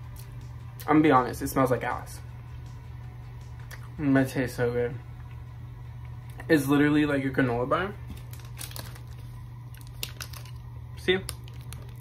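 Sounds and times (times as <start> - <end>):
steady low hum: 0.0 - 12.0
foil wrapper crinkling: 8.1 - 12.0.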